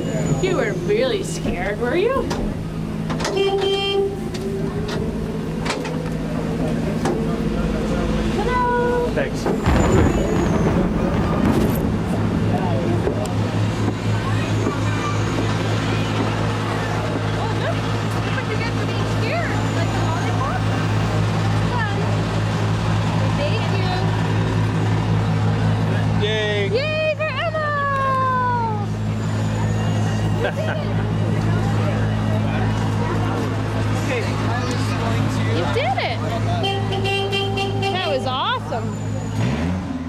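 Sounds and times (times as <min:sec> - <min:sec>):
low engine hum: 0:00.0 - 0:40.0.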